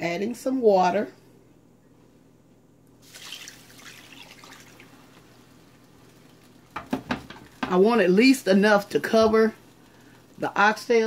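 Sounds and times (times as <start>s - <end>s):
water pouring and splashing: 3.0s - 7.6s.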